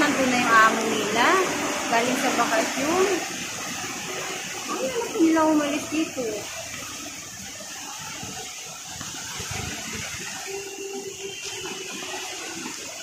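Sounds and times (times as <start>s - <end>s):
steady rain falling: 0.0s - 13.0s.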